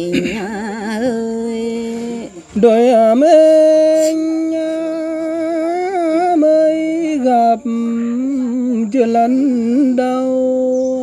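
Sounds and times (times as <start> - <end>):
person singing unaccompanied: 0.0 - 11.0.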